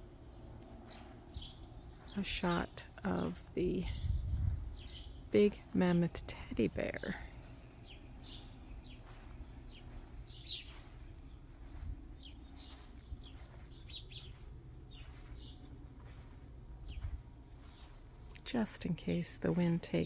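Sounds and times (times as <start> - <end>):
birds chirping: 0.0 - 20.0
steady low rumble: 0.0 - 20.0.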